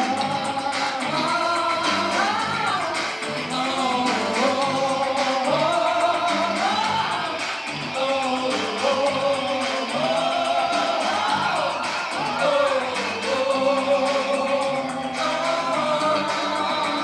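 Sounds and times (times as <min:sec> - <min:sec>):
held synth tones: 0:00.0 - 0:17.0
person singing: 0:00.0 - 0:17.0.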